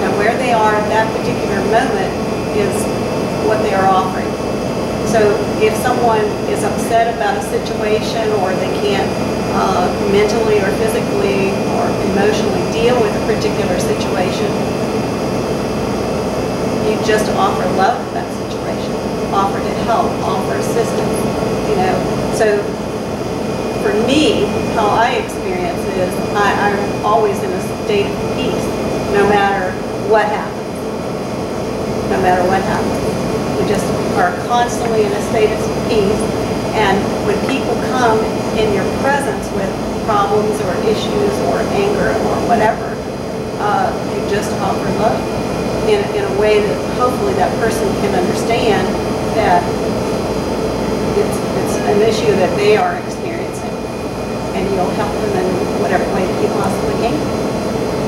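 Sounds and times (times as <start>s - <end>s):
woman speaking: 0.0s - 4.4s, 5.0s - 14.7s, 16.8s - 22.8s, 23.8s - 30.8s, 32.1s - 49.8s, 51.0s - 53.9s, 54.5s - 57.3s
woman talking: 0.0s - 4.4s, 5.0s - 14.7s, 16.8s - 22.8s, 23.8s - 30.8s, 32.1s - 49.8s, 51.0s - 53.9s, 54.5s - 57.3s
loud steady background noise: 0.0s - 58.0s
steady background noise: 0.0s - 58.0s.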